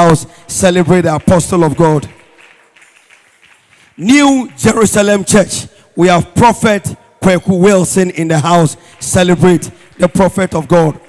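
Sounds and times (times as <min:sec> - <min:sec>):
amplified voice: 0:00.0 - 0:02.3, 0:04.0 - 0:11.0
faint scattered applause: 0:00.6 - 0:05.1.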